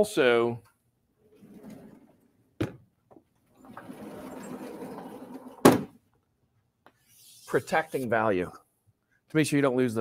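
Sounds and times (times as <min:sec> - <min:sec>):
chalk scratching on blackboard: 0:07.0 - 0:08.1.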